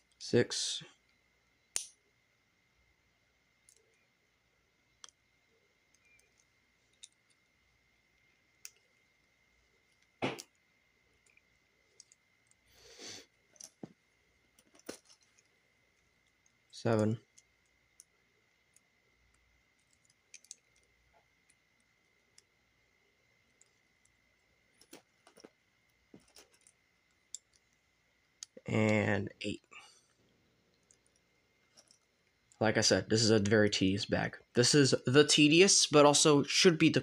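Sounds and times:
loose plastic pieces rustling: 11.2s - 18.1s
plastic bricks clicking and snapping: 19.8s - 20.9s.

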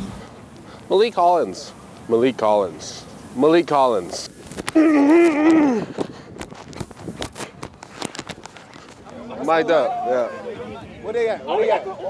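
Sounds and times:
pads and jersey rustling on mic: 3.1s - 9.6s.

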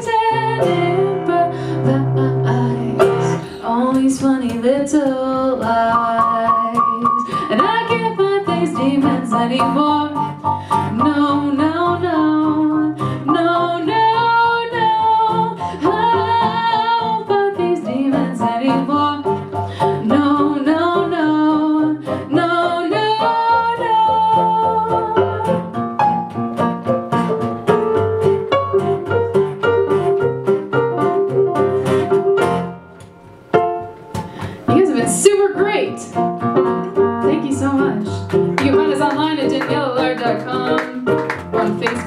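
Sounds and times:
woman singing with vibrato: 0.0s - 10.2s, 10.9s - 19.3s, 20.0s - 25.6s, 37.3s - 42.0s
electric keyboard: 12.5s - 42.0s.

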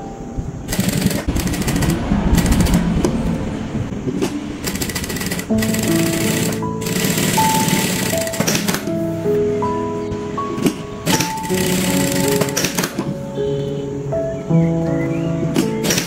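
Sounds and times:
background music: 0.0s - 16.0s
sewing machine stitching rapidly: 0.7s - 2.5s, 4.7s - 8.8s, 11.1s - 13.0s.

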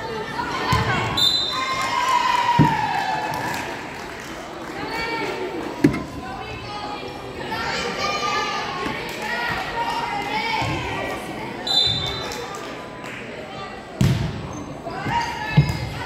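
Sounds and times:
players and spectators calling out: 0.0s - 3.9s, 4.7s - 12.8s
shrill referee's whistle: 1.2s - 1.7s, 11.6s - 12.2s.

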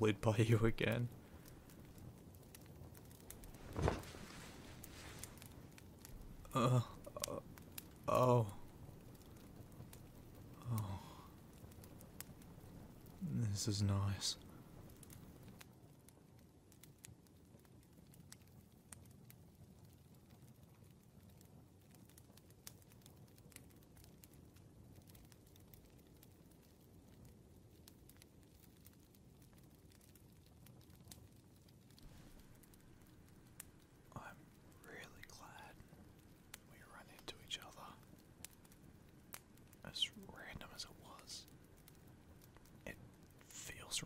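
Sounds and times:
soft whispering voice: 0.0s - 1.8s, 3.7s - 12.0s, 12.8s - 15.1s, 31.9s - 38.7s, 39.8s - 44.0s
faint rain hiss: 0.0s - 44.0s
fireplace crackles: 0.0s - 44.0s.

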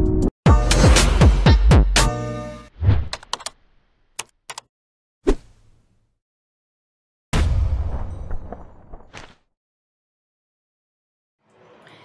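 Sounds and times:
keystroke-like clicks: 3.2s - 3.6s, 4.2s - 4.7s.

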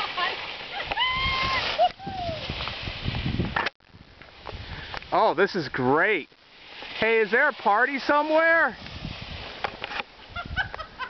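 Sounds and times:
skis scraping over snow: 0.0s - 3.6s, 4.4s - 10.4s.

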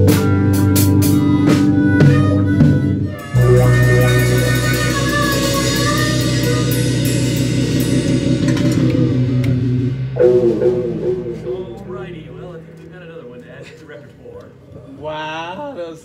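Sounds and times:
rock band playing: 0.0s - 14.0s
loud final band hit ringing: 6.6s - 13.7s
players talking quietly: 10.5s - 16.0s.

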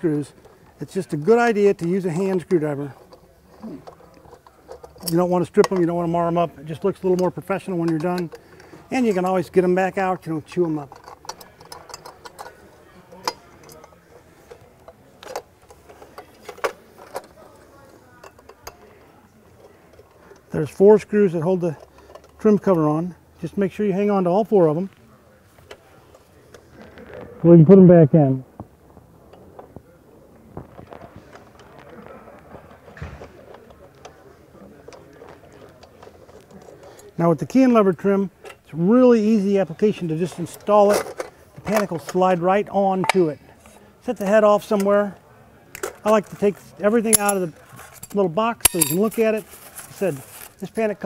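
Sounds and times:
small metal clicks: 47.1s - 49.3s.

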